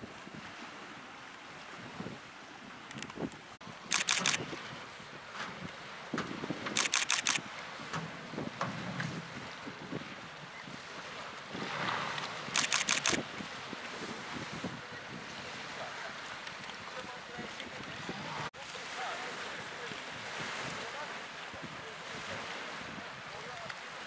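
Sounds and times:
wind on microphone: 0.0s - 18.5s, 19.8s - 24.0s
camera shutter clicks: 3.9s - 4.4s, 6.7s - 7.4s, 12.5s - 13.2s.

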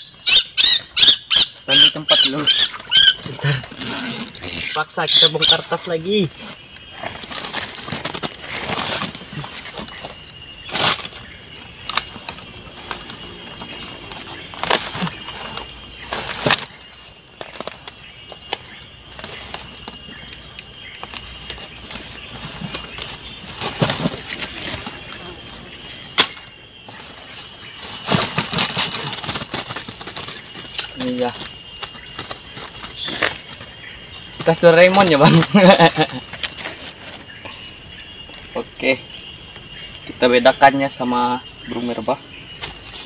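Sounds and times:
forest insects droning: 0.0s - 43.0s.

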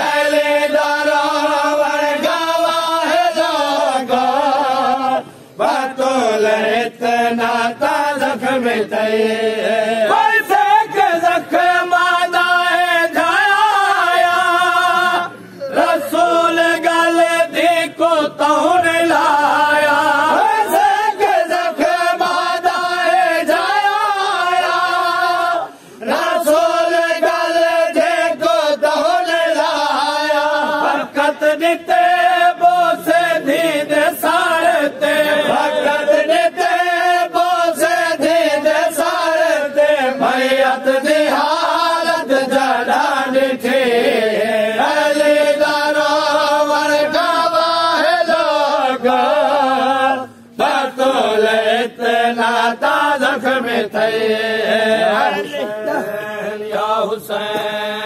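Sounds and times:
men chanting through a microphone: 0.0s - 58.0s.

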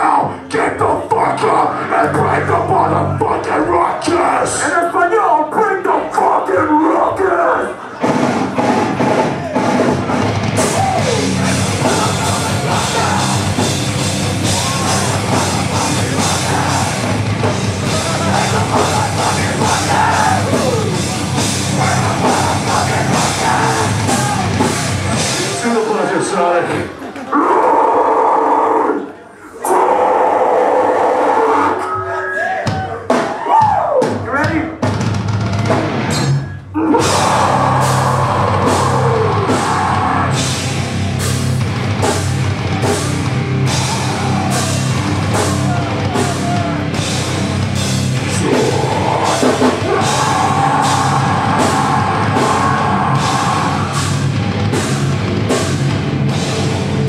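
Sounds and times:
band playing live: 0.0s - 28.4s, 29.7s - 57.0s
pounding drums: 8.0s - 25.9s, 32.7s - 57.0s
shouted vocal: 10.6s - 25.2s, 27.2s - 34.1s, 36.8s - 40.6s, 43.6s - 47.2s, 48.2s - 54.4s.

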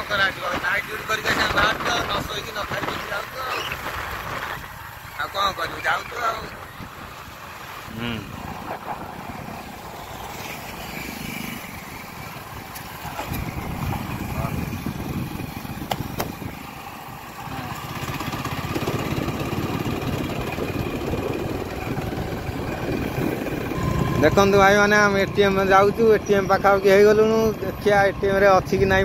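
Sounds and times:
wind rushing on microphone: 0.0s - 10.4s, 12.1s - 16.8s, 18.4s - 29.0s
motorcycle engine running: 6.4s - 24.6s.

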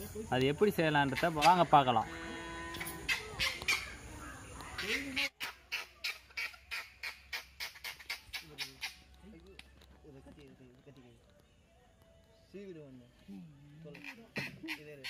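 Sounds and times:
faint background sounds: 0.0s - 15.0s
kindling crackling and snapping: 6.6s - 14.3s.

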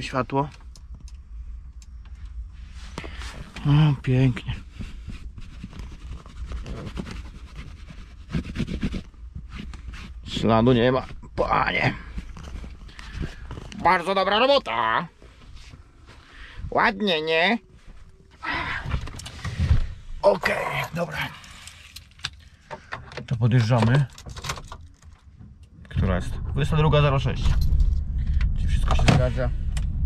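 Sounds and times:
steady low rumble: 0.0s - 22.9s, 23.9s - 30.0s
man talking: 3.6s - 4.6s, 20.2s - 21.5s, 23.3s - 24.1s, 25.9s - 27.6s.

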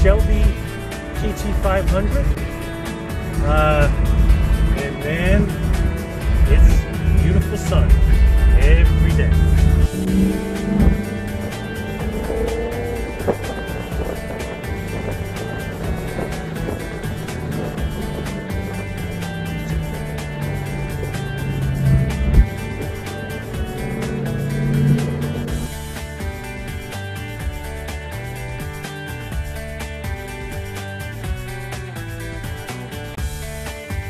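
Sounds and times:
car engine drone: 0.0s - 34.0s
music: 0.0s - 34.0s.

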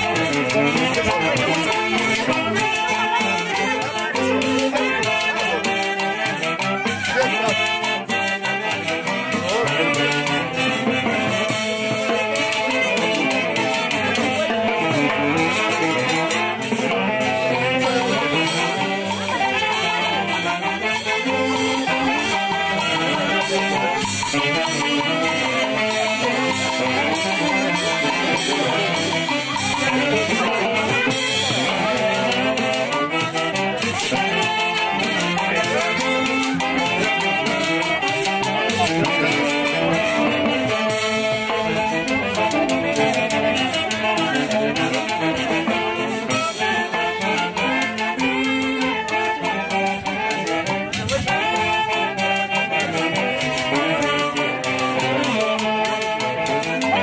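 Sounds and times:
band playing lively dance tune: 0.0s - 57.0s.

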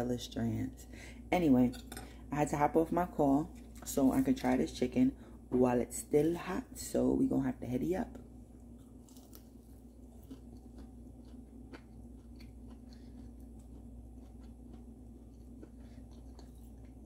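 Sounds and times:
low background hum: 0.0s - 17.0s
chewing crispy food: 8.6s - 17.0s
small crunches: 8.8s - 17.0s.

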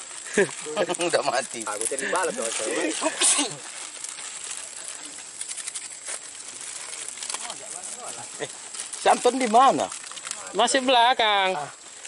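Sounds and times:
faint clicks and rustles: 0.0s - 12.0s
outdoor background hiss: 0.0s - 12.0s.

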